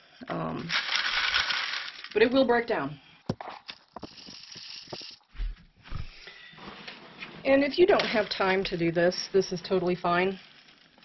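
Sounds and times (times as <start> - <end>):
dull low thumps: 5.4 - 6.2.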